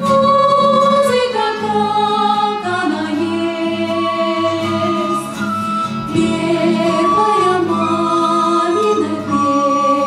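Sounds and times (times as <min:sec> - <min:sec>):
acoustic guitar: 0:00.0 - 0:10.0
violin: 0:00.0 - 0:10.0.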